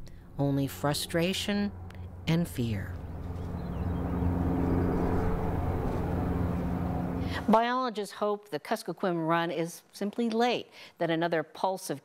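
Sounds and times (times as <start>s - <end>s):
motor droning: 0.9s - 7.5s.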